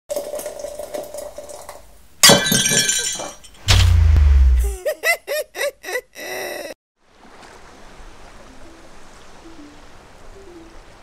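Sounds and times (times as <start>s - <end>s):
deep low boom: 3.7s - 4.8s.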